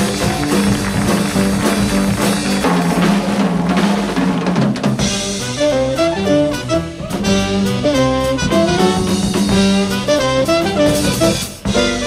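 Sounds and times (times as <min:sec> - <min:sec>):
jazz band playing live: 0:00.0 - 0:12.0.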